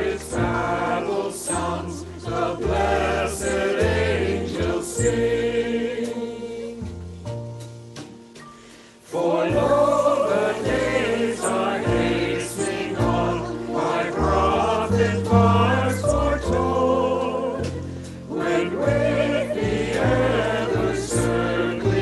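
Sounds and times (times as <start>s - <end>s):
choir singing: 0.0s - 7.0s, 9.1s - 22.0s.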